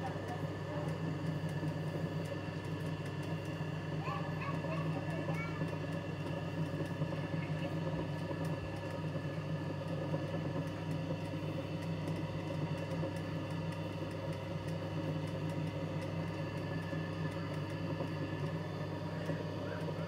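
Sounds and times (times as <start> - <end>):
embroidery machine motor hum: 0.0 - 20.0.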